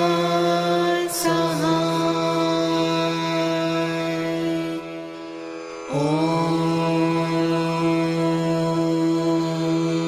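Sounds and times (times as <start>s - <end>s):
steady drone: 1.2s - 10.0s
person chanting a long note: 5.9s - 10.0s.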